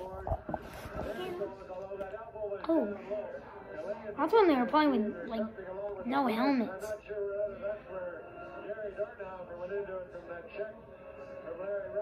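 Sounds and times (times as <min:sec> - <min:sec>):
television audio with held tones: 0:00.0 - 0:12.0.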